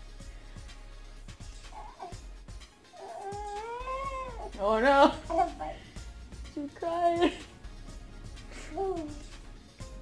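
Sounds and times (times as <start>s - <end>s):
small dog whining: 1.7s - 2.2s, 2.8s - 4.6s.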